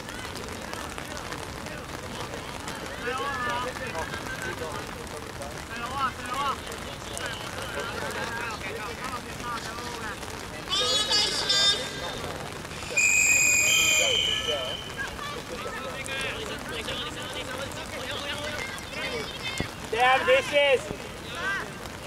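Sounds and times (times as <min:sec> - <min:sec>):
outdoor hiss: 0:00.1 - 0:22.0
players shouting: 0:05.8 - 0:22.0
referee's whistle blast: 0:12.8 - 0:15.1.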